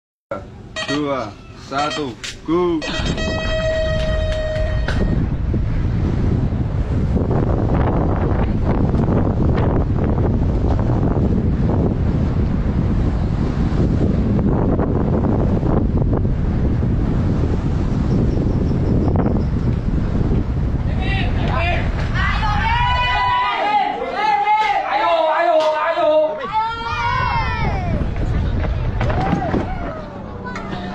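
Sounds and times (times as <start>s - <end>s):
wind buffeting microphone: 2.2s - 23.6s, 24.8s - 30.9s
people shouting and cheering: 20.9s - 30.9s.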